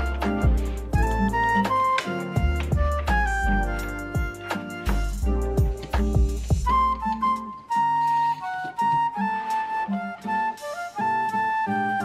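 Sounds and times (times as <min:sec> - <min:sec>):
instrumental background music: 0:00.0 - 0:12.0.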